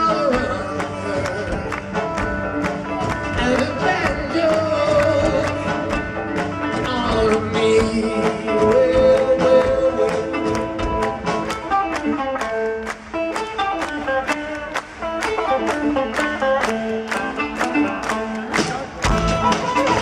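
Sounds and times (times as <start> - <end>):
plucked string instruments: 0.0 - 20.0
drum and percussion hits: 18.5 - 20.0.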